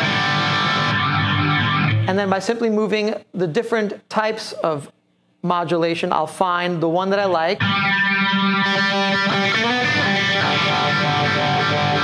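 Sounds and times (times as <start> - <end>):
distorted electric guitar chord ringing: 0.0 - 2.2, 7.6 - 12.0.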